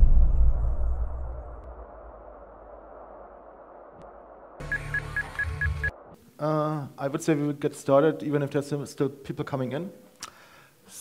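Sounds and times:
low rumble: 0.0s - 4.6s
rapid short high beeps: 4.6s - 5.9s.

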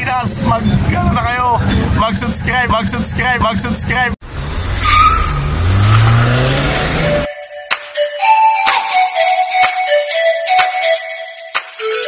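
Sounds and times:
engine revving: 0.0s - 7.3s
loud rushing skidding noise: 4.2s - 7.3s
music: 7.2s - 12.0s.

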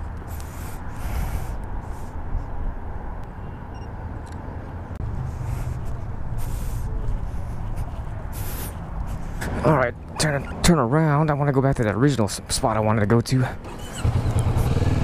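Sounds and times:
traffic noise: 0.0s - 15.0s.

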